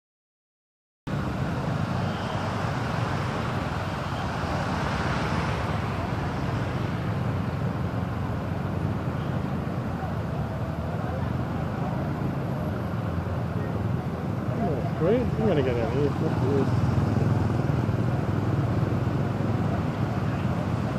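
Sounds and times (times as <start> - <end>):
road and water noise: 1.1 - 20.9
vehicle engine rumble: 1.1 - 20.9.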